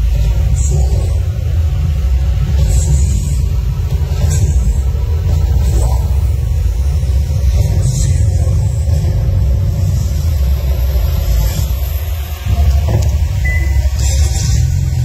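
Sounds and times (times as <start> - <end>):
loud deep rumble: 0.0 - 15.0
music: 12.0 - 15.0.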